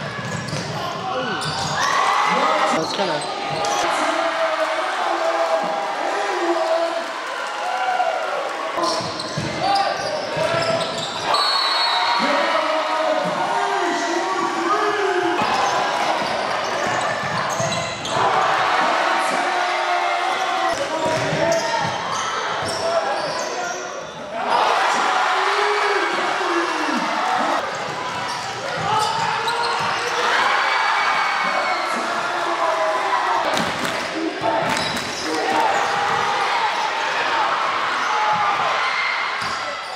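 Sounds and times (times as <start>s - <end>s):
players and spectators shouting: 0.0s - 39.9s
basketball bouncing on court: 21.0s - 22.0s.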